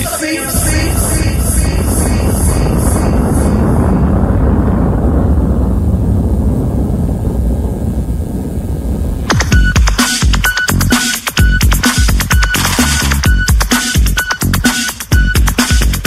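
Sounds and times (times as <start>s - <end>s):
pulsing rushing noise effect: 0.0s - 12.3s
deep rumble: 0.0s - 13.5s.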